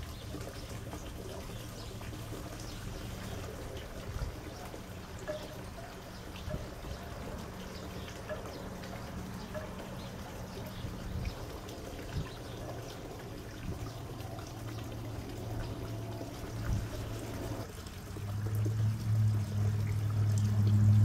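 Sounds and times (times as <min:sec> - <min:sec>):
low steady hum: 0:00.0 - 0:21.0
water trickling and pouring: 0:00.0 - 0:21.0.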